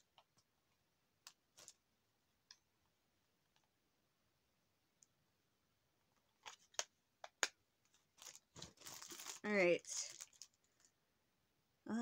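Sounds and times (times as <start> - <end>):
case clicks and taps: 6.4 - 7.6.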